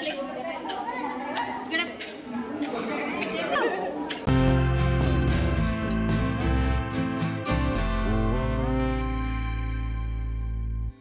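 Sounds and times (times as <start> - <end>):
many people talking in a hall: 0.0 - 4.4.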